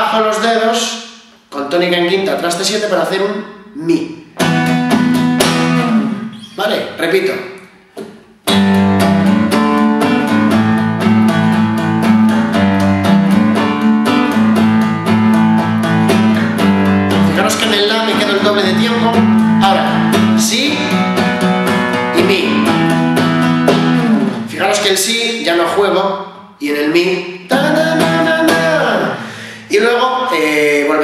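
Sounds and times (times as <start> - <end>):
nylon-string guitar strumming: 4.4 - 6.6, 8.4 - 25.1, 27.5 - 29.1.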